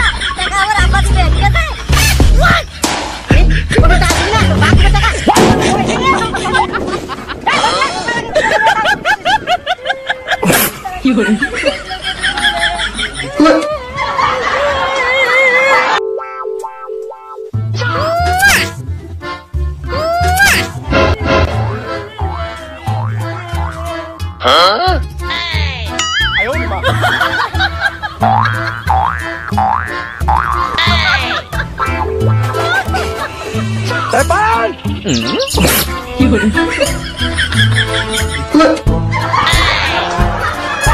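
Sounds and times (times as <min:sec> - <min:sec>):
comical background music: 0:00.0 - 0:10.4, 0:15.6 - 0:40.9.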